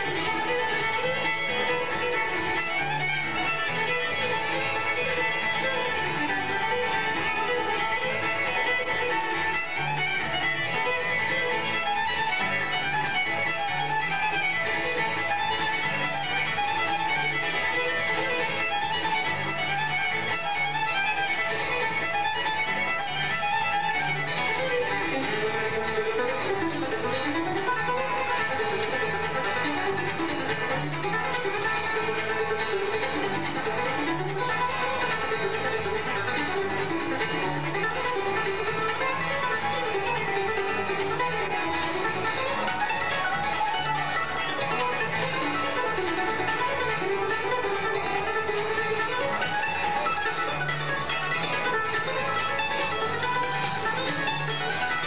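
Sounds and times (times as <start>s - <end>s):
bluegrass band playing: 0.0s - 55.0s
fiddle melody: 0.0s - 55.0s.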